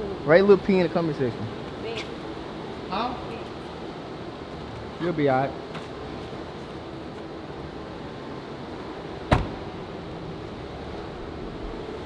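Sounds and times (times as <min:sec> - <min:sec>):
steady background hum: 0:00.0 - 0:12.0
car door shutting: 0:09.2 - 0:09.8.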